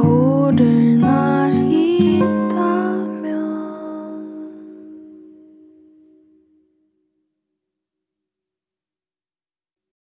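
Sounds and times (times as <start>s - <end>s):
slow sad ballad chord ringing: 0.0s - 6.8s.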